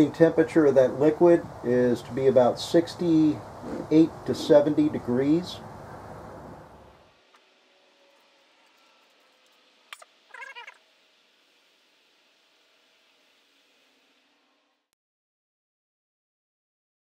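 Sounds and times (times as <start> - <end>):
faint background hum: 0.0 - 14.9
high-pitched animal call: 3.6 - 4.4, 9.9 - 10.8.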